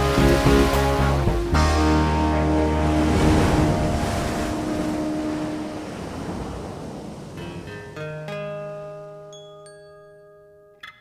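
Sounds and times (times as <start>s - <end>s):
held music chord: 0.0s - 6.4s
breaking surf rushing: 0.0s - 8.3s
soft plucked notes: 7.4s - 11.0s.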